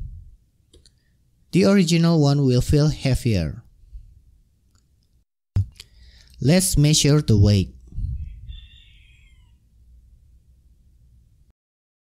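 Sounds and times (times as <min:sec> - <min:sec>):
high thin animal call: 0:08.2 - 0:09.7.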